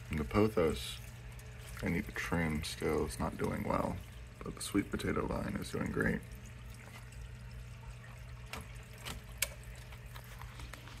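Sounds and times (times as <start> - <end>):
water trickling and dripping: 0.0 - 11.0.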